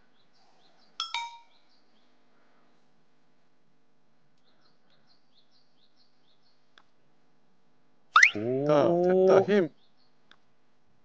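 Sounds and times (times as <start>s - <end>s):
faint birdsong: 0.0s - 11.0s
metallic dings: 1.0s - 1.5s.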